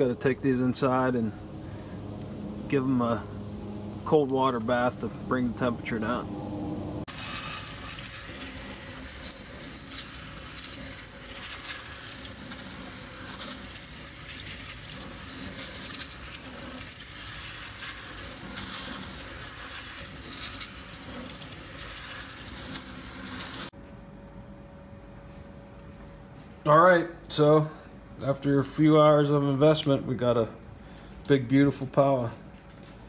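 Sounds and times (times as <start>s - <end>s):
sink sprayer spraying water: 7.1s - 23.7s.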